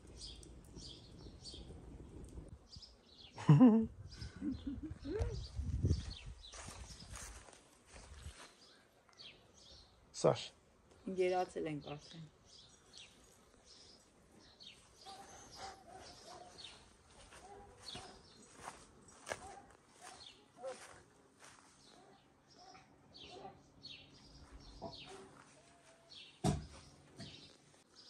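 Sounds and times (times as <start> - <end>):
songbird chirping: 2.5 - 28.0.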